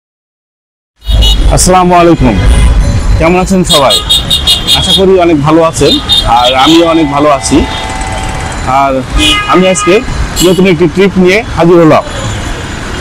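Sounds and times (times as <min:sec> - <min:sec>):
busy city street traffic: 0:01.0 - 0:13.0
man talking: 0:01.5 - 0:02.6, 0:03.2 - 0:04.1, 0:04.7 - 0:07.8, 0:08.6 - 0:12.2.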